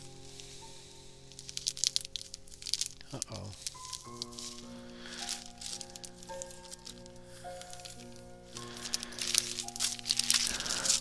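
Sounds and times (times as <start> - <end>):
crinkling rustles of handled material: 0.0 - 11.0
quiet background music: 0.0 - 11.0.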